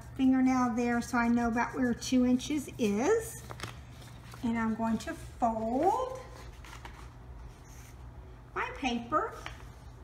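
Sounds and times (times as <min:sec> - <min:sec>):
paper rustling: 0:03.2 - 0:08.0.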